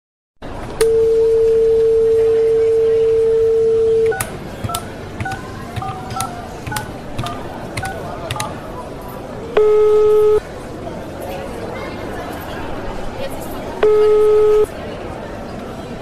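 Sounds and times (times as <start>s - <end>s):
telephone dial tone: 0.8s - 8.6s, 9.6s - 10.4s
touch-tone keypad beeps: 0.8s - 8.6s, 9.6s - 10.4s, 13.8s - 14.7s.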